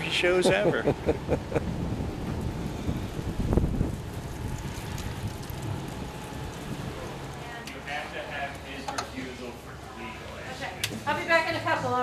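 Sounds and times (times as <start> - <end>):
wind buffeting microphone: 0.4 - 7.4.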